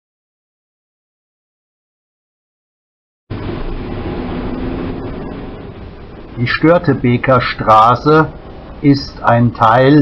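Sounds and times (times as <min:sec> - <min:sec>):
car engine and road noise: 0:03.3 - 0:09.7
faint low hum: 0:03.3 - 0:10.0.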